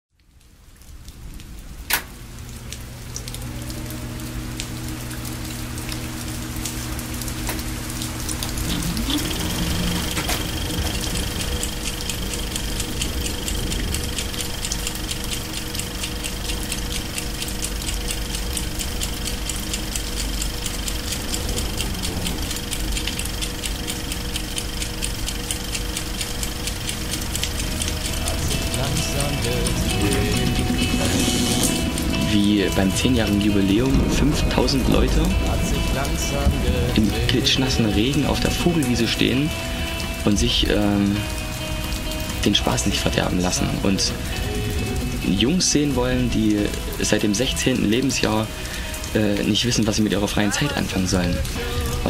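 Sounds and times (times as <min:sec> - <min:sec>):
video static hiss and crackle: 0:00.1 - 0:52.0
low hum: 0:00.5 - 0:52.0
sharp click: 0:01.9 - 0:02.1
thin high tone: 0:27.6 - 0:40.4.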